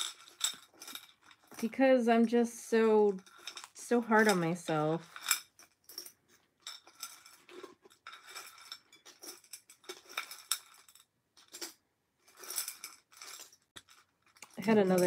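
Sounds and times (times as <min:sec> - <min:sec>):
jewelry clinking and rattling: 0:00.0 - 0:15.0.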